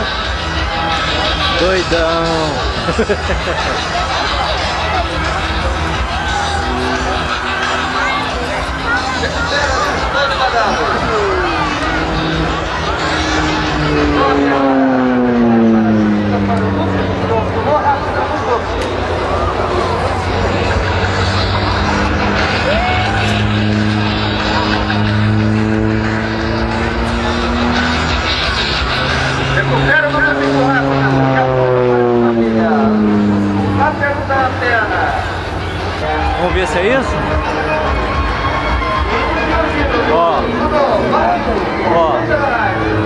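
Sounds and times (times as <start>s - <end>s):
propeller aircraft drone: 0.0s - 43.0s.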